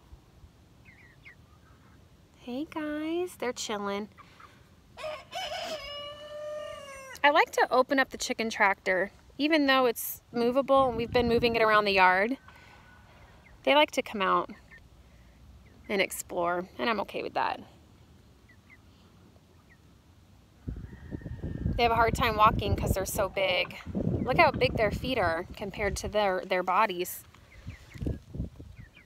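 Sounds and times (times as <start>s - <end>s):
chickens peeping: 0.8s - 2.2s, 4.0s - 7.2s, 11.7s - 16.2s, 18.1s - 20.0s, 20.6s - 29.0s
rooster crowing: 5.0s - 7.2s
low rumbling noise: 20.6s - 26.3s.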